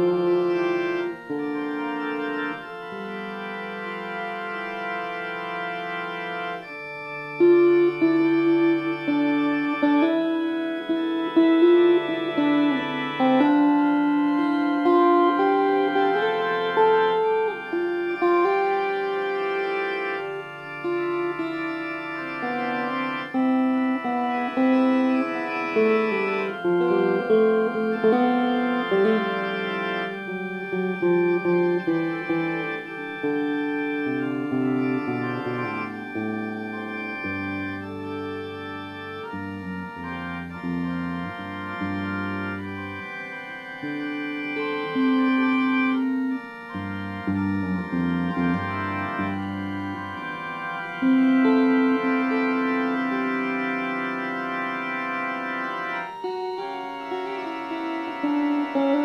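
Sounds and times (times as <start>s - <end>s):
electric guitar: 0.0s - 59.0s
organ holding chords: 0.0s - 59.0s.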